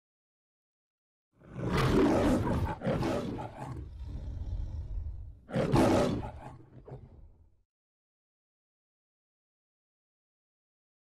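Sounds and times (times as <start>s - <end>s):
lion roaring: 1.4s - 7.4s.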